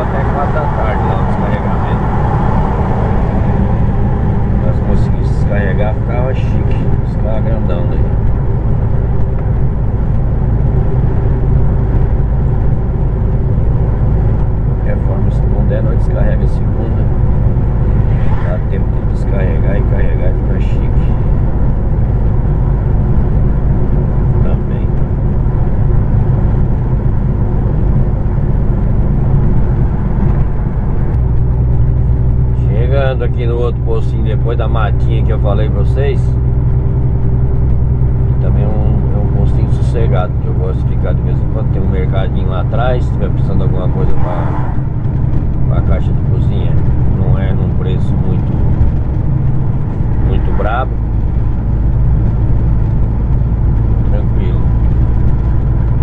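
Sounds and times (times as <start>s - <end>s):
diesel truck engine droning: 0.0s - 56.0s
road noise: 0.0s - 56.0s.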